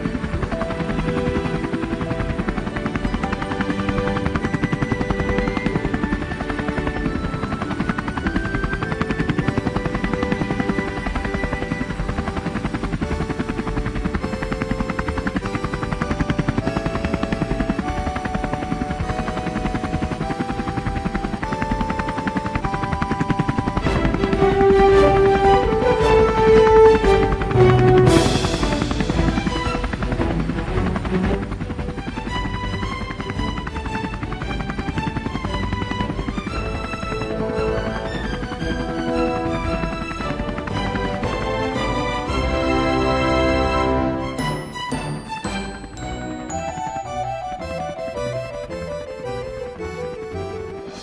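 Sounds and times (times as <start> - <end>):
helicopter rotor blades beating: 0.0 - 51.0
melody of held notes: 0.0 - 51.0.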